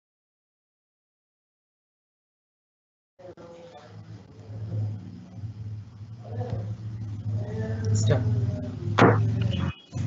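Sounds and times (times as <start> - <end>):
low steady hum: 3.2 - 10.0.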